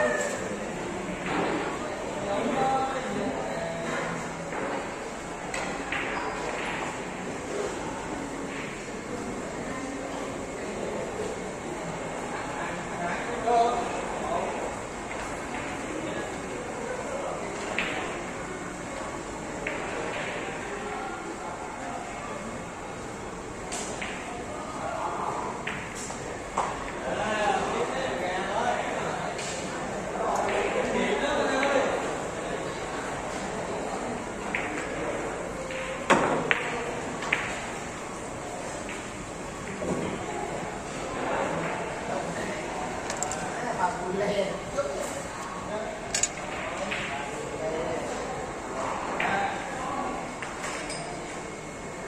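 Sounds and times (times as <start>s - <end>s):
murmur of billiards hall: 0.0s - 52.0s
cue striking ball: 35.7s - 40.0s.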